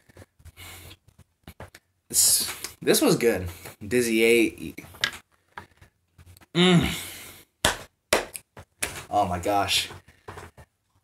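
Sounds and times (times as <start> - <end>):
person humming: 6.6 - 7.0.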